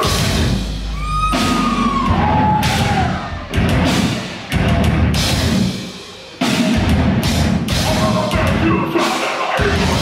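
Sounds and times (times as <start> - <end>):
heavy metal band breakdown: 0.0 - 10.0.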